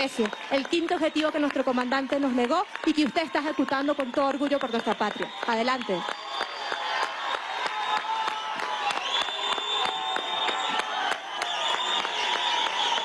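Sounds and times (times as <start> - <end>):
crowd clapping and cheering: 0.0 - 13.0.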